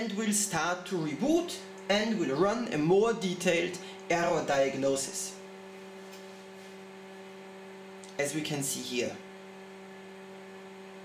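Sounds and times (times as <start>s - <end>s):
electronic equipment hum: 0.0s - 11.0s.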